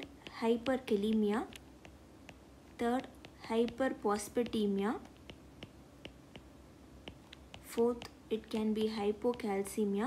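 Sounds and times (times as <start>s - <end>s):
stylus tapping glass screen: 0.0s - 10.0s.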